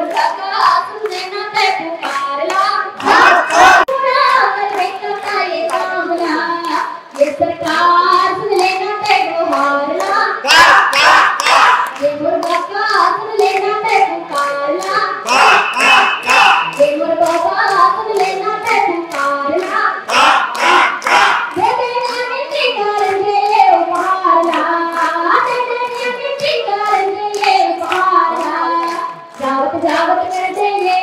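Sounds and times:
hand claps: 0:00.0 - 0:31.0
woman singing through loudspeaker: 0:00.0 - 0:31.0.

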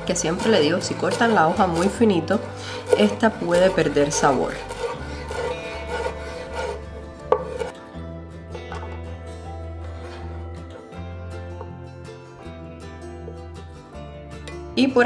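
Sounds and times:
background music: 0:00.0 - 0:15.0
knife chopping on wooden board: 0:00.4 - 0:07.7.

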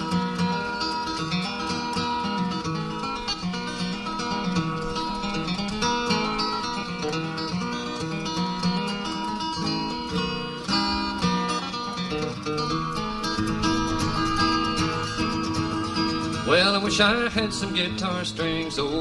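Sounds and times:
flatpicked acoustic guitar: 0:00.0 - 0:19.0.

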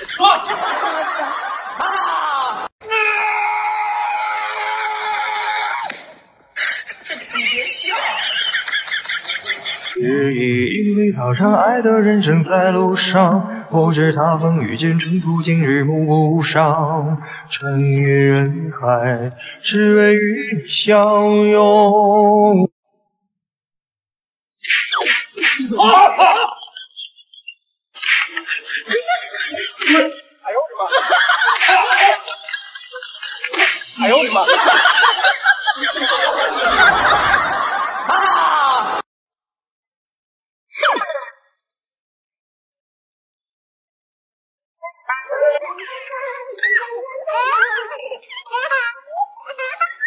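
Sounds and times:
long high-pitched scream: 0:02.9 - 0:06.0
sharp slaps: 0:05.8 - 0:06.2, 0:24.7 - 0:25.7
wavering voice-like sound: 0:24.6 - 0:30.8.

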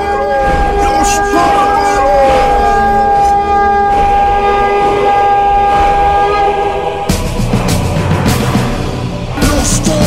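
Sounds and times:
steady horn-like tone: 0:00.0 - 0:09.6
rock music with hard drums: 0:07.0 - 0:10.0.

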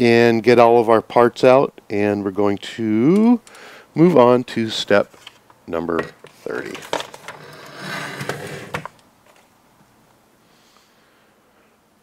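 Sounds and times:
paper and plastic rustling: 0:06.2 - 0:09.5.

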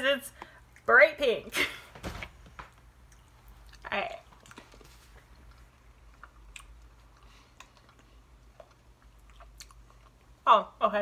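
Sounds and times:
low steady hum: 0:00.0 - 0:11.0
chewing jelly beans: 0:03.0 - 0:10.4.

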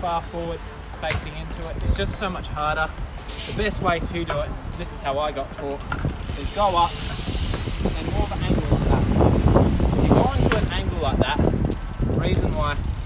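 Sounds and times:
bike rolling on concrete: 0:00.0 - 0:13.0
wind on microphone: 0:01.2 - 0:13.0.

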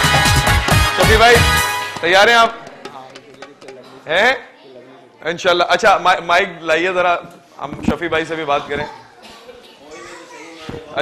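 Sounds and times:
studio audience chatter: 0:00.0 - 0:11.0
children's voices: 0:08.5 - 0:11.0.

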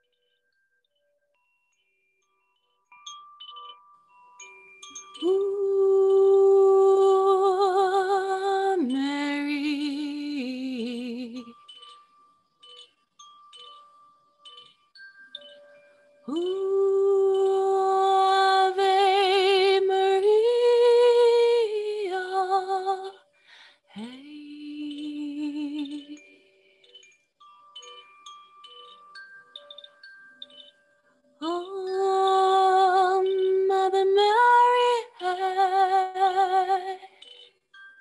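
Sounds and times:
bamboo chime ringing: 0:00.0 - 0:20.1, 0:24.6 - 0:38.0
woman singing wordlessly: 0:05.2 - 0:11.6, 0:16.2 - 0:23.2, 0:23.9 - 0:26.4, 0:31.4 - 0:37.2.

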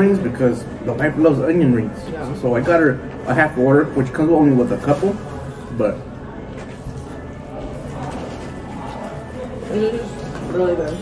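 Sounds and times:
faint music: 0:00.0 - 0:11.0
indistinct diner chatter: 0:00.0 - 0:11.0.

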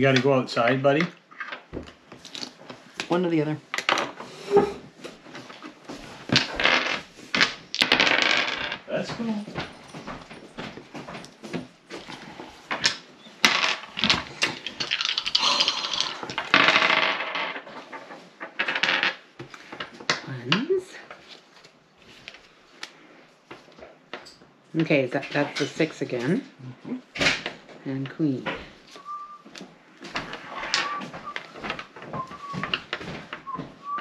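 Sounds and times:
dice clattering on wooden table: 0:01.0 - 0:02.6, 0:06.3 - 0:09.7, 0:12.7 - 0:20.2, 0:30.2 - 0:33.0
dice rattling in hands: 0:06.4 - 0:08.8, 0:13.4 - 0:17.6.

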